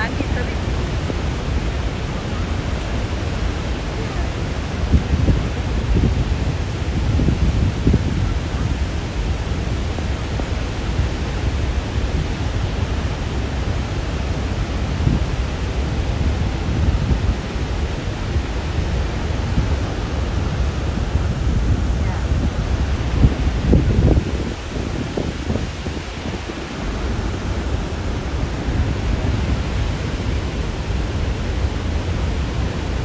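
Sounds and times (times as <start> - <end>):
waterfall roar: 0.0 - 33.0.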